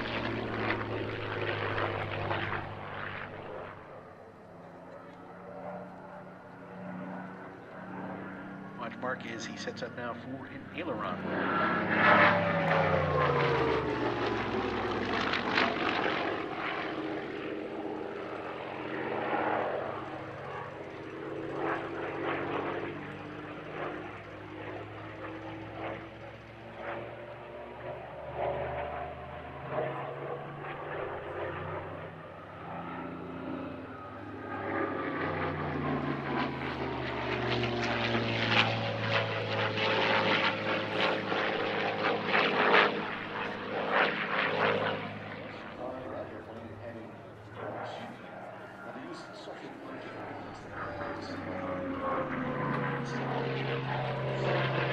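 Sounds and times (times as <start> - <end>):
propeller plane engine overhead: 0.0 - 54.9.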